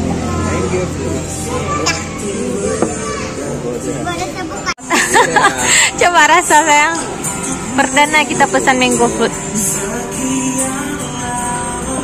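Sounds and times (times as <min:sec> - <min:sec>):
background music: 0:00.0 - 0:12.0
children's voices: 0:01.5 - 0:04.8.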